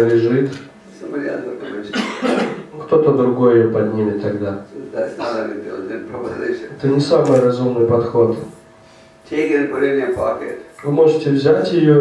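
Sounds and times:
person speaking: 0:00.0 - 0:12.0
person coughing: 0:01.8 - 0:02.7.

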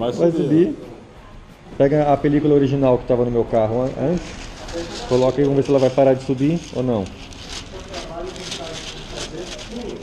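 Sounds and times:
faint murmured voices: 0:00.0 - 0:10.0
plastic film rustling: 0:03.5 - 0:10.0.

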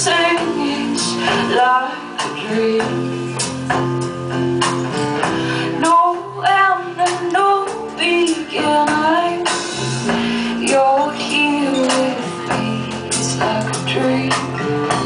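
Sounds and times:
woman singing: 0:00.0 - 0:03.3, 0:05.6 - 0:15.0.

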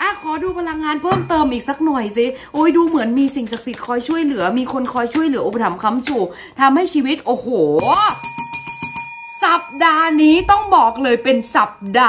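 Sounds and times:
bell chime ringing: 0:00.0 - 0:02.1.

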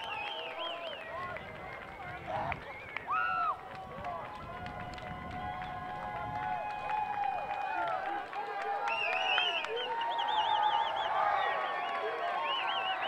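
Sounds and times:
players shouting and chatting: 0:07.4 - 0:13.0.

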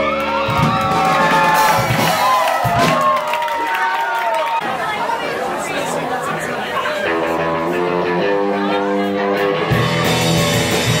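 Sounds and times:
audience cheering and whooping: 0:00.0 - 0:04.7.

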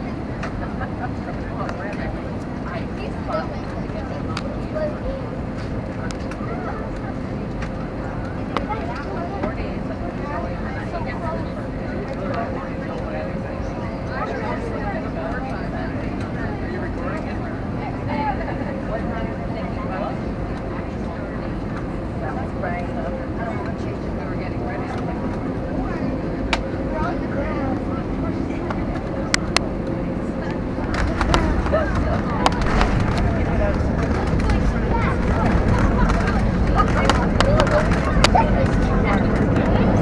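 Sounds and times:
engines and airflow rushing: 0:00.0 - 0:40.0
faint constant hum: 0:00.0 - 0:40.0
low rumble: 0:17.4 - 0:40.0.

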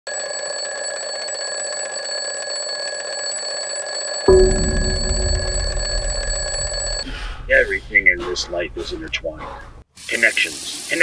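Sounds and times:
deep low sound: 0:04.3 - 0:09.7.

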